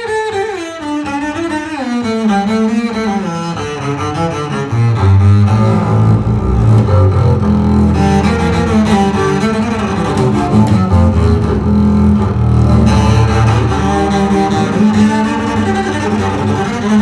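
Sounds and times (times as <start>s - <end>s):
bowed double bass low notes: 3.5s - 17.0s.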